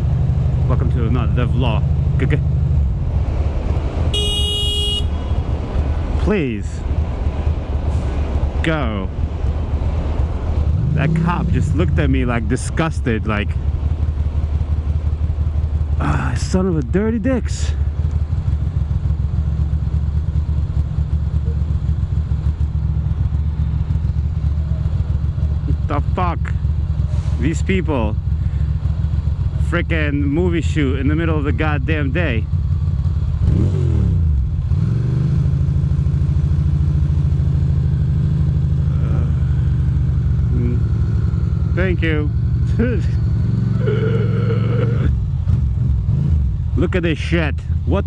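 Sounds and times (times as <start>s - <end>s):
motorcycle engine idling: 3.8s - 6.1s, 12.0s - 33.5s, 35.5s - 48.0s
horn blast: 4.1s - 5.4s.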